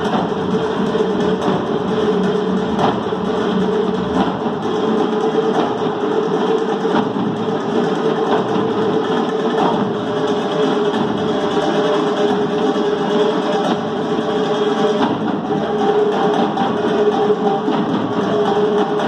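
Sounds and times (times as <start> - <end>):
frame drums playing fast rhythm: 0.0 - 19.0.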